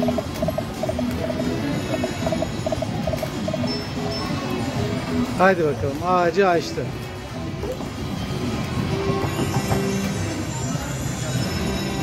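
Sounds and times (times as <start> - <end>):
slot machine music: 0.0 - 4.2.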